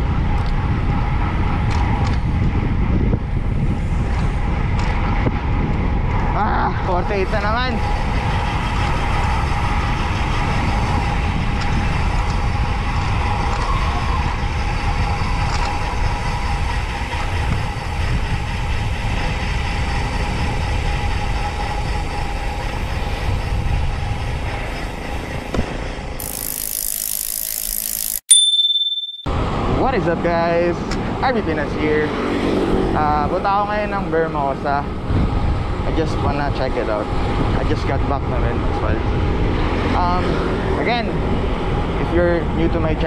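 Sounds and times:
wind rushing over microphone: 0:00.0 - 0:27.2, 0:29.3 - 0:43.0
bicycle tyre and road noise: 0:00.0 - 0:28.3, 0:29.4 - 0:43.0
electronic chime: 0:26.2 - 0:29.3.

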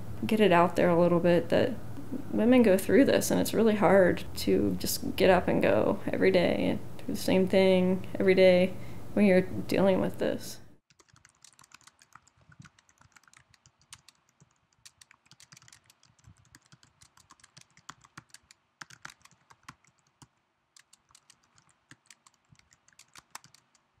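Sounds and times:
typing on computer keyboard: 0:10.9 - 0:23.9.

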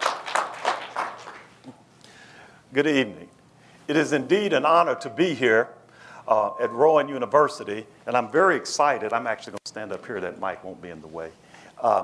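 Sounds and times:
audience applause: 0:00.0 - 0:01.6.

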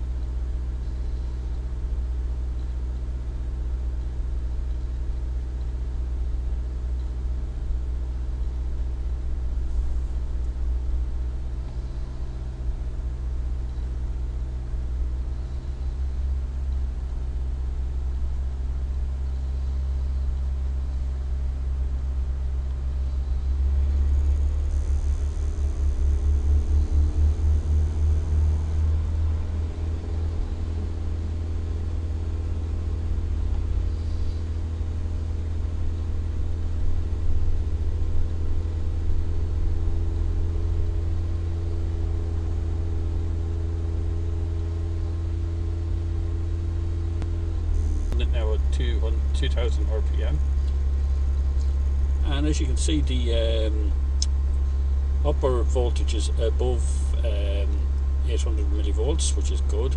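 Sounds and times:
car engine running steadily: 0:00.0 - 0:59.9.

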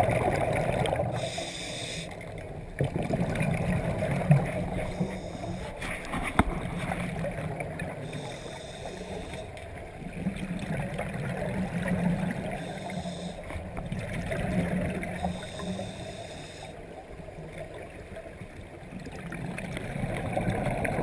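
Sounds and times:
hissing regulator inhalations: 0:01.2 - 0:02.2, 0:04.8 - 0:05.8, 0:08.0 - 0:09.6, 0:12.5 - 0:13.6, 0:15.2 - 0:16.8.

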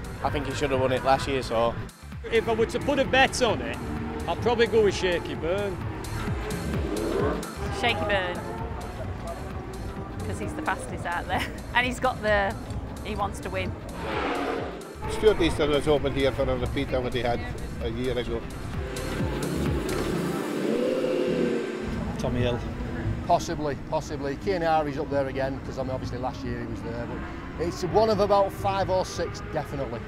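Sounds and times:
superbikes passing at speed: 0:00.0 - 0:11.2, 0:12.5 - 0:23.4
background music: 0:00.0 - 0:30.0
motorcycle engine revving: 0:02.2 - 0:23.3.

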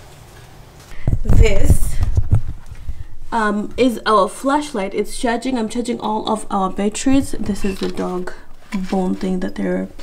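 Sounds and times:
thumps and knocks on microphone: 0:01.0 - 0:03.0.

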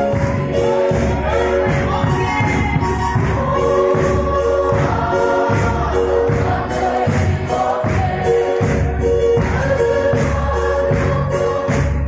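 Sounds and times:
choir singing gospel: 0:00.0 - 0:12.0
steady low beat: 0:00.0 - 0:12.0.

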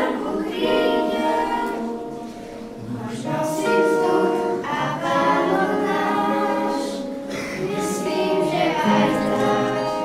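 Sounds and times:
girls singing together: 0:00.0 - 0:10.0
strummed acoustic guitar: 0:00.0 - 0:10.0.

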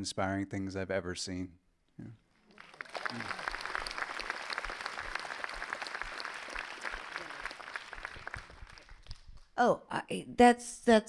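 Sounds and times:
audience applause: 0:02.5 - 0:09.4.

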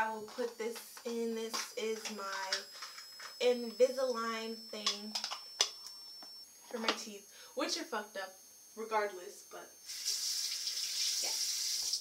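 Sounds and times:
sink tap running: 0:09.9 - 0:12.0.

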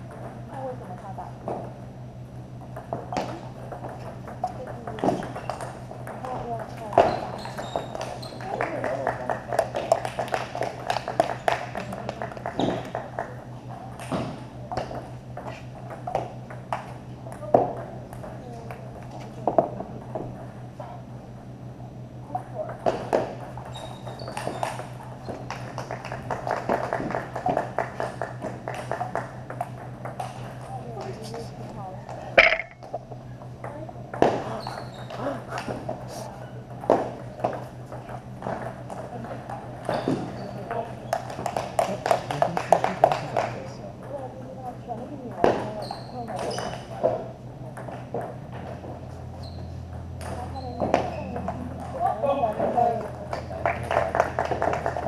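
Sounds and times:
ping-pong ball clicking: 0:32.4 - 0:32.9.

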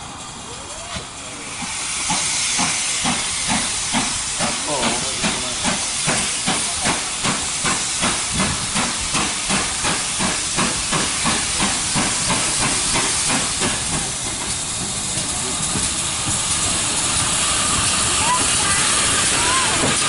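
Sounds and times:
steam hissing: 0:00.0 - 0:20.0
steam locomotive exhaust beats: 0:00.0 - 0:20.0.

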